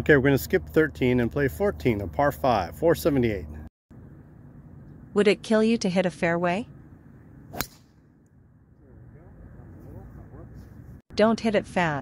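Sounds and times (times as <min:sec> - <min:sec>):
golf club striking ball: 0:07.5 - 0:08.1.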